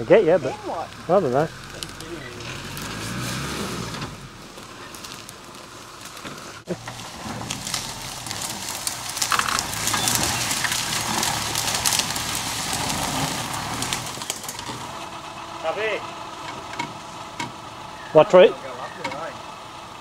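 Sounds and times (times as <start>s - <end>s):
off-road vehicle engine running low: 0.0s - 20.0s
twigs and grass crackling under tyres: 0.0s - 20.0s.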